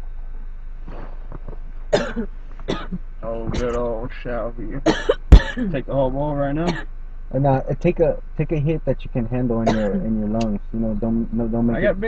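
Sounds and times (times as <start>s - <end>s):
man coughing: 2.0s - 6.8s, 7.6s - 10.7s.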